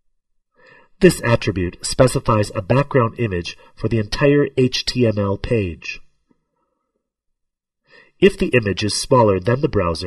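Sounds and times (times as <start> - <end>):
faint intake of breath: 0.5 - 1.0, 7.8 - 8.2.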